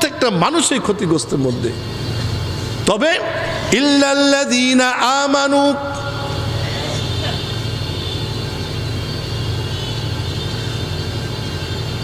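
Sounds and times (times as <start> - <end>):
loudspeaker system hum and hiss: 0.0 - 12.0.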